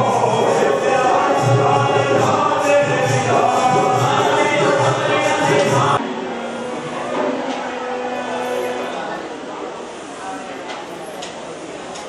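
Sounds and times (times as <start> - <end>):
group singing: 0.0 - 6.0.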